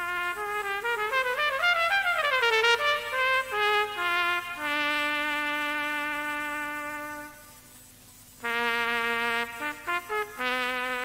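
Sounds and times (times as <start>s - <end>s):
solo cornet playing: 0.0s - 7.5s, 8.4s - 11.0s.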